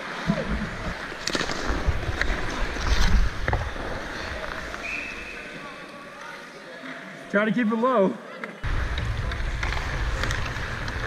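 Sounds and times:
skate blades scraping ice: 0:00.9 - 0:05.6, 0:08.9 - 0:11.0
hockey stick and puck clicks: 0:01.2 - 0:03.9, 0:08.4 - 0:11.0.

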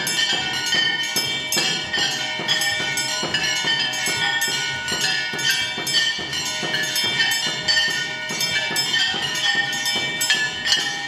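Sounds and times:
metal percussion strikes: 0:00.0 - 0:11.0
temple bells ringing: 0:00.0 - 0:11.0.

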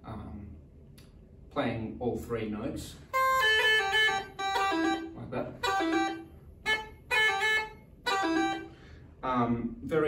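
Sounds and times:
uilleann pipes chanter playing staccato: 0:03.1 - 0:08.7.

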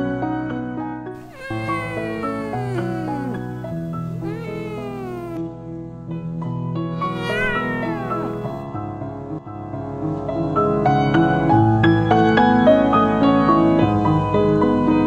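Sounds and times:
cat meowing: 0:01.2 - 0:05.4, 0:07.0 - 0:08.7.

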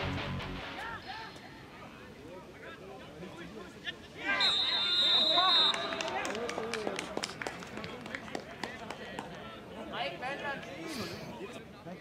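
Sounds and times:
referee's whistle blast: 0:04.3 - 0:06.0.

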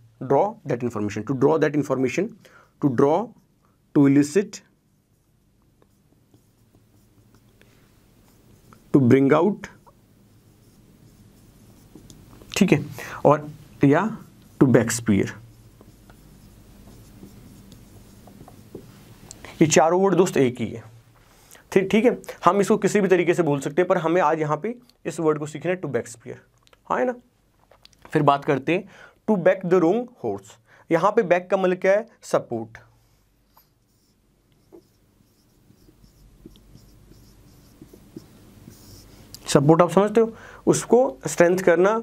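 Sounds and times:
marker pen scratching on whiteboard: 0:04.6 - 0:12.8, 0:14.1 - 0:19.0, 0:33.5 - 0:39.3
marker pen tapping: 0:15.8 - 0:18.9, 0:35.8 - 0:38.3.

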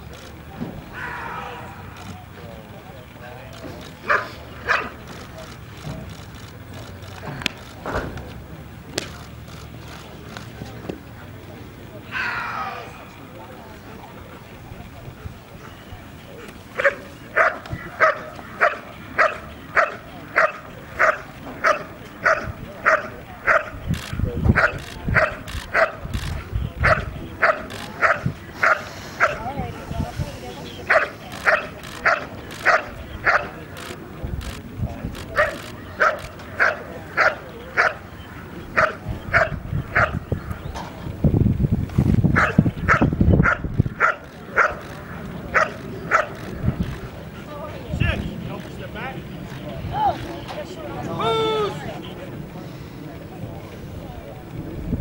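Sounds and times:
dog barking sharply: 0:04.1 - 0:05.0.

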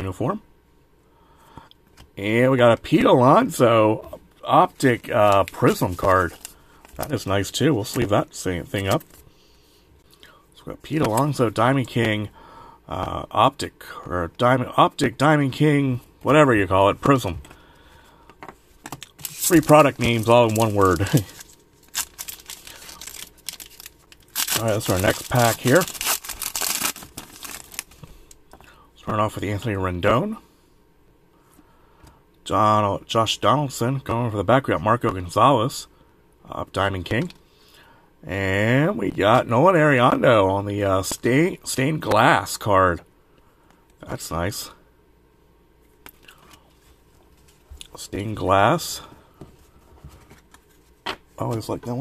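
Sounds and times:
foil wrapper crinkling: 0:04.7 - 0:07.2, 0:19.0 - 0:28.4
wrapper tearing: 0:19.1 - 0:28.0.

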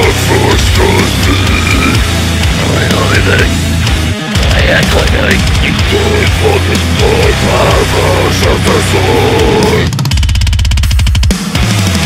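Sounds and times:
harsh vocals: 0:00.0 - 0:10.1
deathcore metal music: 0:00.0 - 0:12.0.

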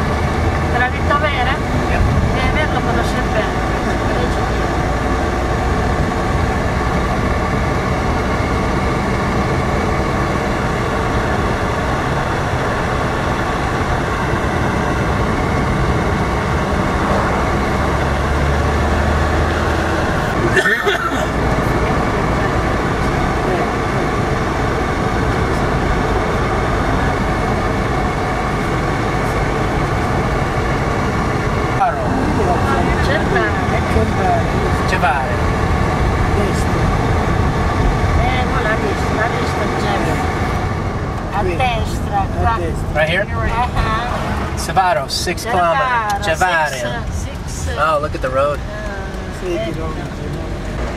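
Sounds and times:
car engine and road noise: 0:00.0 - 0:50.9.

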